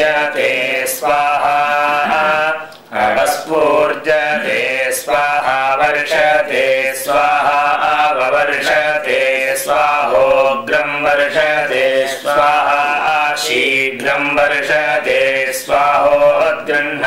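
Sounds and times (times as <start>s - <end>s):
man chanting: 0.0s - 17.0s.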